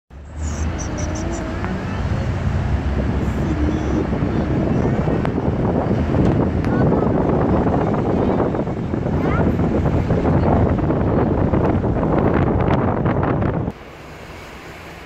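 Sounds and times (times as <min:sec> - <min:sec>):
car road noise rumble: 0:00.1 - 0:15.0.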